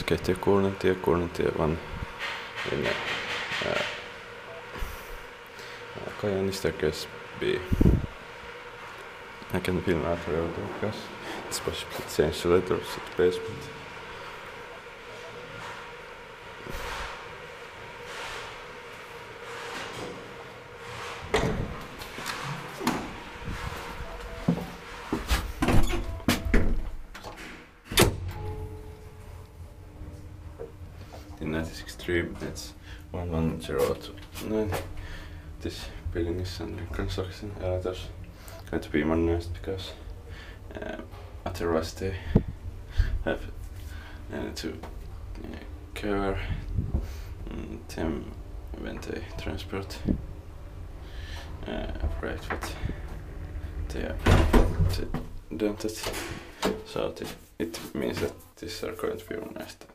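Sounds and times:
elevator ride hiss and hum: 0.0 - 59.1
elevator button clunk: 25.6 - 29.0.

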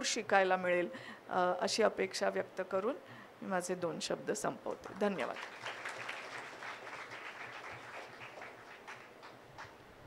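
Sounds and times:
audience applauding: 5.2 - 9.8.

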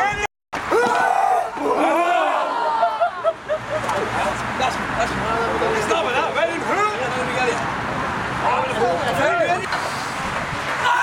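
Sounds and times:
people chattering: 1.5 - 7.8, 8.4 - 9.7.

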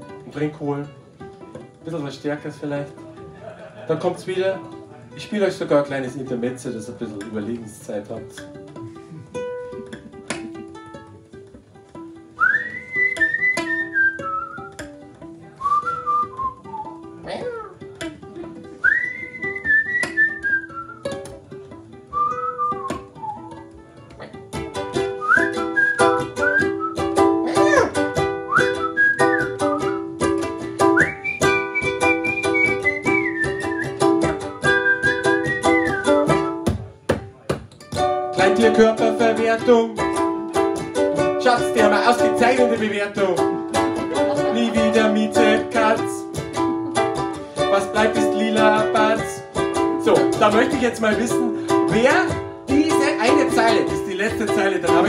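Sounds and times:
ukulele playing: 0.0 - 55.0
person whistling a melody: 12.4 - 14.9, 15.6 - 17.7, 18.8 - 21.2, 22.1 - 23.7, 25.1 - 27.8, 28.4 - 30.2, 30.8 - 36.7.

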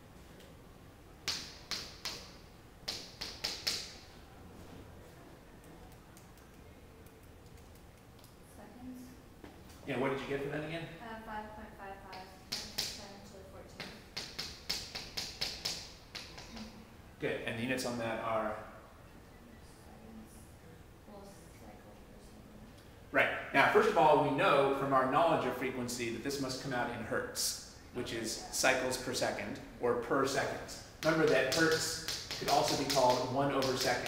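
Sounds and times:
chalk tapping on chalkboard: 1.2 - 4.0, 12.1 - 13.1, 13.8 - 16.7, 31.0 - 34.0.

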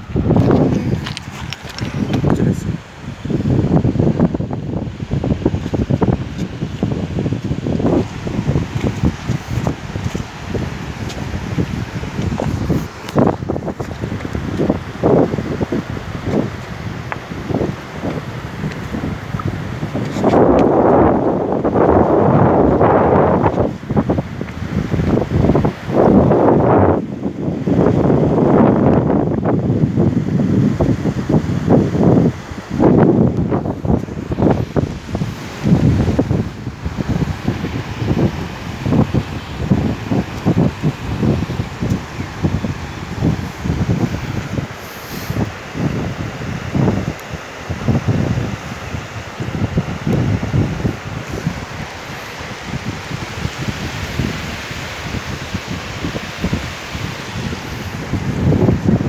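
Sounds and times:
river rushing around boulders: 0.0 - 59.0
wind gusting on microphone: 0.0 - 59.0.

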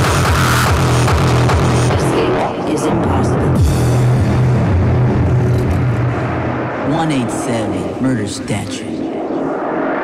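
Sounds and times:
distorted noise: 0.0 - 10.0
low droning bass: 0.0 - 10.0.

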